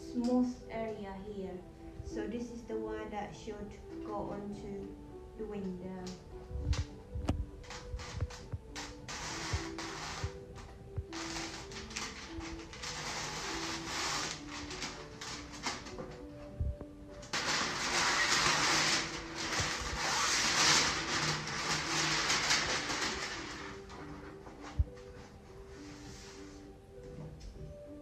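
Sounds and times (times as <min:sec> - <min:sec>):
quiet background music: 0:00.0 - 0:28.0
plastic sheet crinkling: 0:06.0 - 0:25.4.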